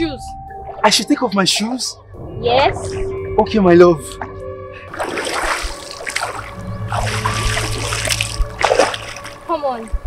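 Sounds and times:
background music: 0.0s - 10.0s
water splashing and sloshing: 4.2s - 10.0s.

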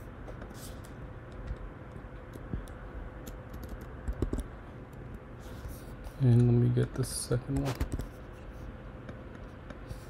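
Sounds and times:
faint steady hum: 0.0s - 10.0s
computer keyboard key presses: 2.3s - 4.5s.

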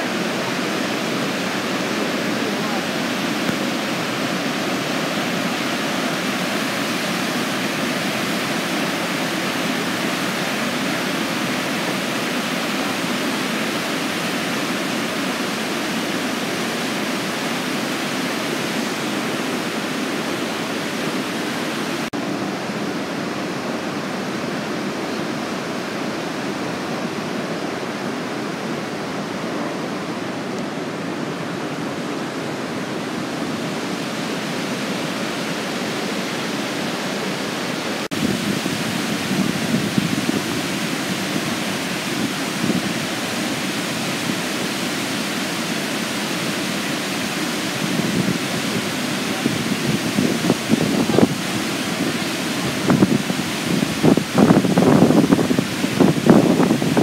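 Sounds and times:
rushing whitewater rapids: 0.0s - 57.0s.

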